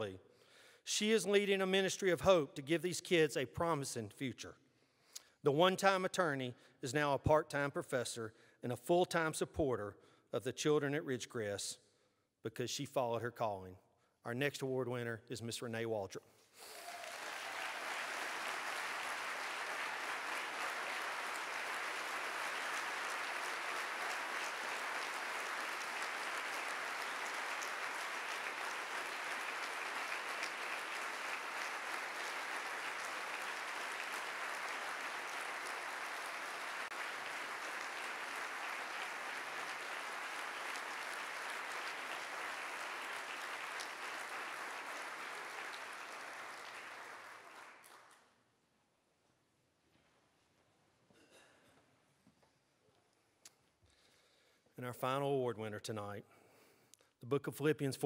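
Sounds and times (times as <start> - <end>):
audience applauding: 16.6 - 48.2.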